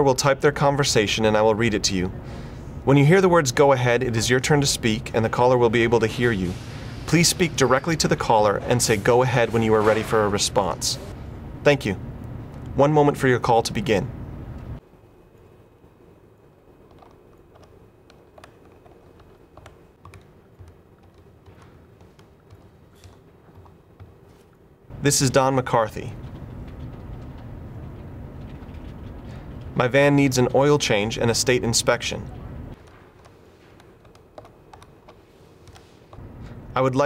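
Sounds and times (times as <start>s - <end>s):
typing on a keyboard: 16.9s - 24.2s, 26.2s - 29.6s, 32.8s - 35.8s.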